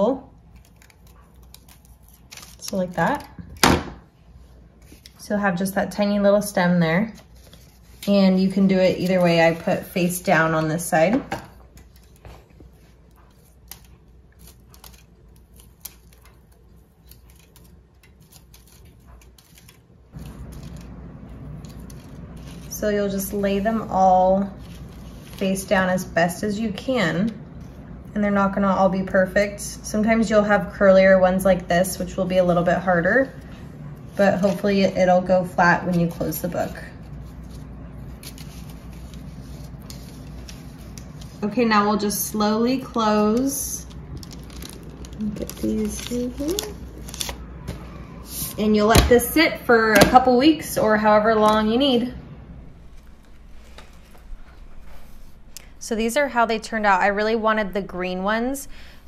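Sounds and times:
paper crackling: 0:00.0 - 0:03.6, 0:04.4 - 0:10.8, 0:11.5 - 0:27.9, 0:32.0 - 0:49.2
low room hum: 0:00.0 - 0:59.0.

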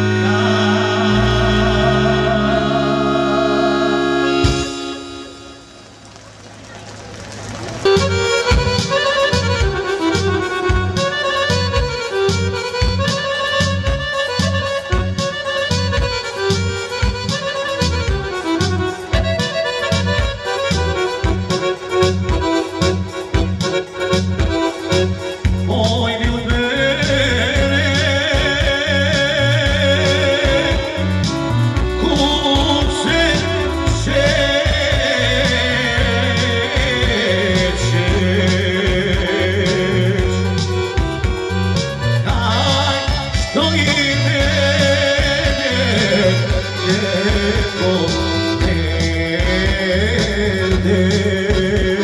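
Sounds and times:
accordion melody: 0:00.0 - 0:06.2, 0:07.7 - 0:52.0
live band held chord: 0:00.0 - 0:52.0
steady beat: 0:07.8 - 0:52.0.

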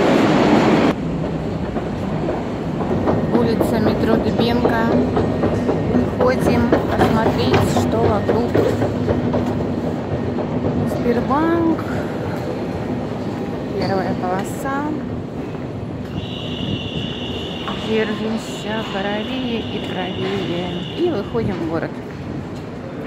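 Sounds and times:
train rushing: 0:00.0 - 0:23.0
turnstile clicks: 0:01.6 - 0:12.4.

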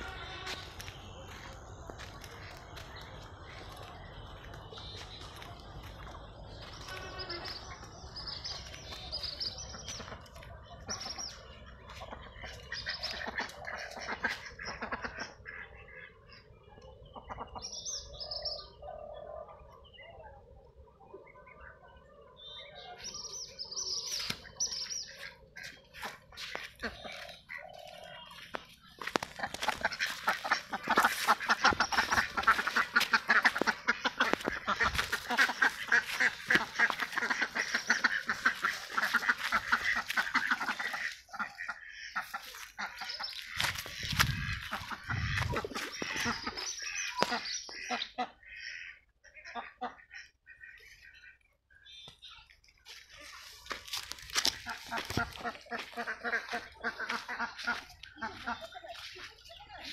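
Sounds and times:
ducks quacking: 0:00.0 - 0:20.5, 0:21.1 - 0:59.9.

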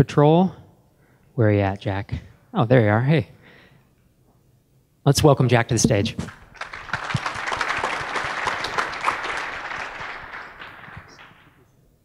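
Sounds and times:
audience applauding: 0:06.2 - 0:11.7.

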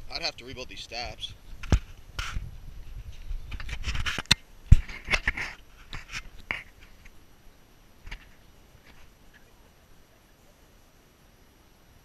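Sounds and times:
rustling: 0:08.0 - 0:09.7.

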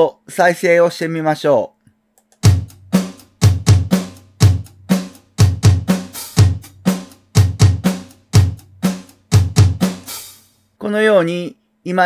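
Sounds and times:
kick drum hits: 0:02.5 - 0:04.7, 0:07.4 - 0:08.7.

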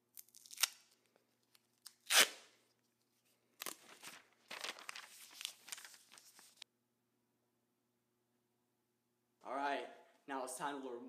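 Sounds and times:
hands handling tape: 0:00.1 - 0:06.6
tape ripping off a roll: 0:00.2 - 0:01.0, 0:01.8 - 0:02.5.

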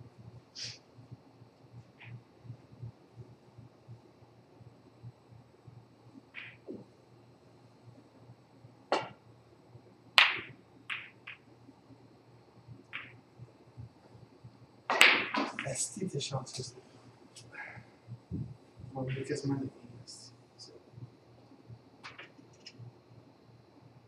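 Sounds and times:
snooker balls clicking: 0:06.4 - 0:06.9, 0:08.9 - 0:09.2, 0:10.2 - 0:11.5, 0:12.8 - 0:13.2, 0:14.9 - 0:15.8, 0:22.0 - 0:22.8
balls knocking cushion: 0:08.9 - 0:09.2, 0:10.2 - 0:11.4, 0:14.9 - 0:15.7
cue striking ball: 0:08.9 - 0:09.2, 0:10.2 - 0:11.4, 0:14.9 - 0:15.6.

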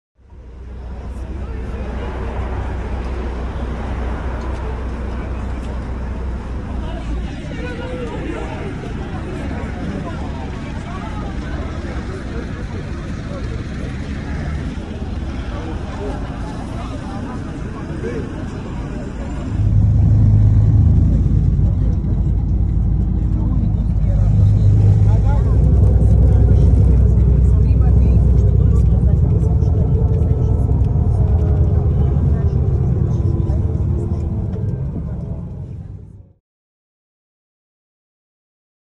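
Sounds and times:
crowd of passengers talking: 0:00.2 - 0:36.4
low bus rumble: 0:00.2 - 0:36.4
street noise: 0:00.2 - 0:36.4.

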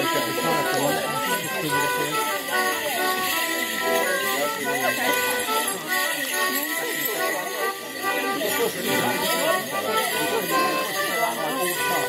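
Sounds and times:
chatter of onlookers: 0:00.0 - 0:12.0
folk dance tune: 0:00.0 - 0:12.0
leg bells jingling: 0:00.0 - 0:12.0.

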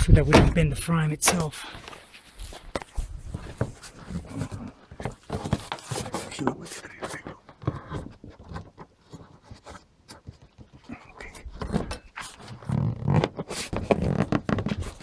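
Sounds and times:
window frame scraping and creaking: 0:02.4 - 0:15.0.

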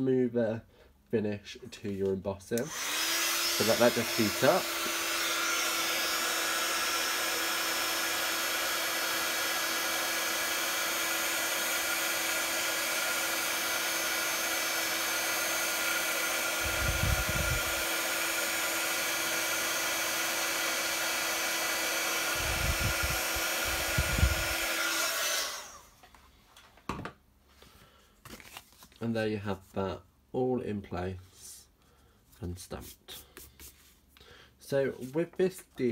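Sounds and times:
heat tool blowing hot air: 0:02.6 - 0:25.9.

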